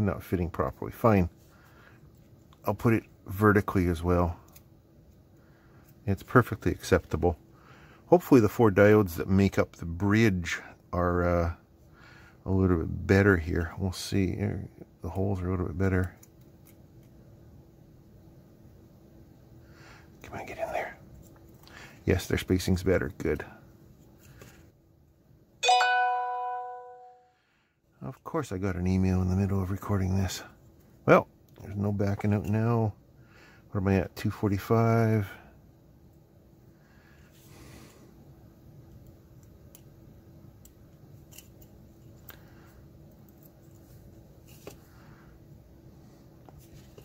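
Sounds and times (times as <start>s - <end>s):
faint steady hum: 0.0s - 47.0s
two-note electronic ding: 25.6s - 27.2s.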